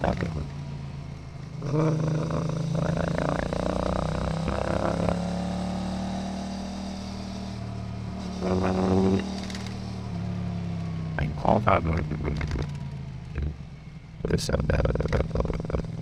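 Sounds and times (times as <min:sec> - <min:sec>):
motorcycle engine hum: 0:00.0 - 0:16.0
warbling voice-like sounds: 0:01.6 - 0:05.2, 0:08.4 - 0:09.2.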